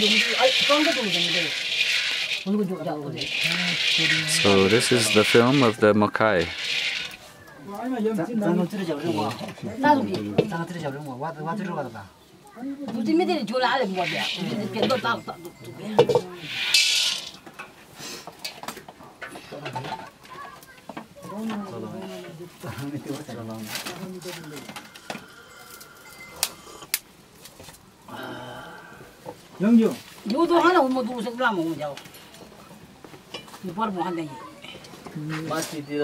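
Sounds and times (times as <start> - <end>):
dry grains rattling in a wok: 0.0 - 5.8, 6.4 - 7.3, 13.8 - 15.1, 16.0 - 17.5
roasting kernels clicking: 0.0 - 5.8, 6.4 - 7.6, 14.0 - 15.0, 16.0 - 17.7
wood fire crackling: 0.0 - 36.0.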